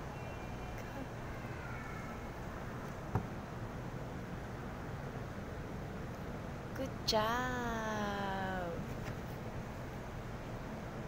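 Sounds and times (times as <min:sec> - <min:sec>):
low steady hiss: 0:00.0 - 0:11.0
woman speaking: 0:06.8 - 0:08.9.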